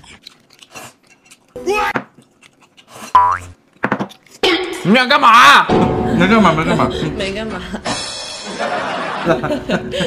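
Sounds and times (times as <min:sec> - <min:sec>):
comic boing sound effect: 0:03.2 - 0:03.5.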